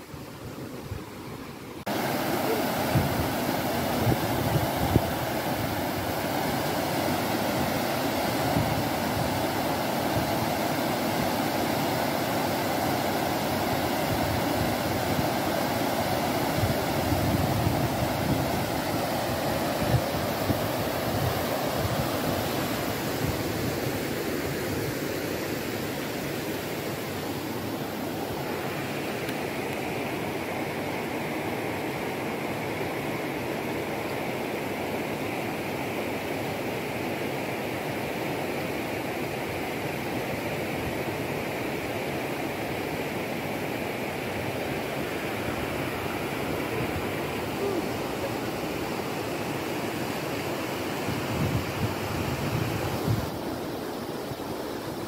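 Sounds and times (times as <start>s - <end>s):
water rushing over a weir: 1.8s - 55.0s.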